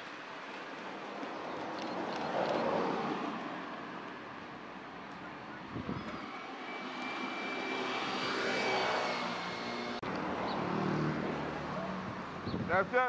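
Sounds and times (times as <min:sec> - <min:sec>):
steady high whine: 0:05.1 - 0:10.0
passing engine: 0:05.1 - 0:12.7.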